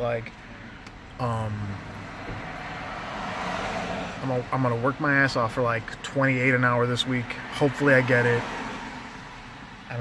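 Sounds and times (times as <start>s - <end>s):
low road rumble: 0.0s - 10.0s.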